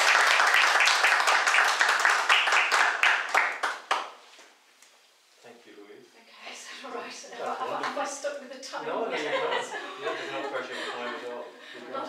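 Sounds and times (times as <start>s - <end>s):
audience applause: 0.0s - 4.1s.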